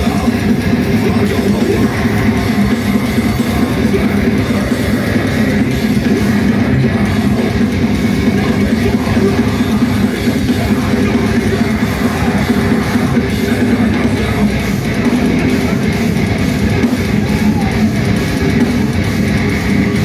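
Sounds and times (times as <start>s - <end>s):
distorted electric guitars: 0.0s - 20.0s
drums: 0.0s - 20.0s.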